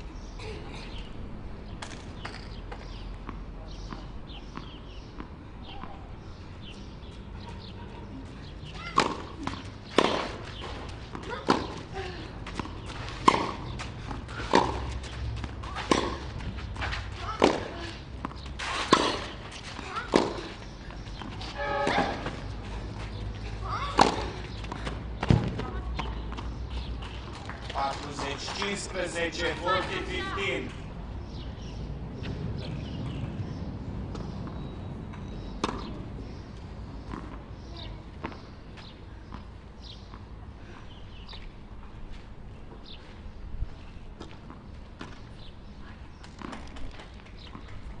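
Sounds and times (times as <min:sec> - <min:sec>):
tennis balls struck by racquets: 0:08.7 - 0:30.7, 0:33.5 - 0:40.4.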